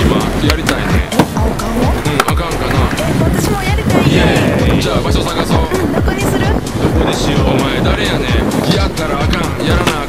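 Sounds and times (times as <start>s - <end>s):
skateboard clacks: 0.0s - 3.4s, 9.2s - 10.0s
hip-hop backing track: 0.0s - 10.0s.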